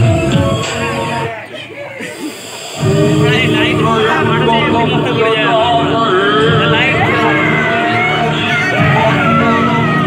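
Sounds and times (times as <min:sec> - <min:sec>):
music and voices over loudspeakers: 0:00.0 - 0:10.0.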